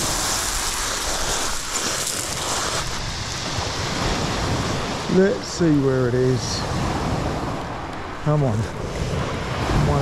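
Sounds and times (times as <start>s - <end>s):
surf washing over shingle: 0.0s - 10.0s
wind on microphone: 0.0s - 10.0s.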